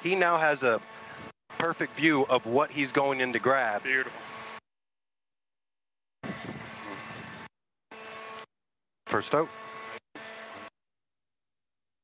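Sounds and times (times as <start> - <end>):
machinery hum with fixed tones: 0.0 - 4.6.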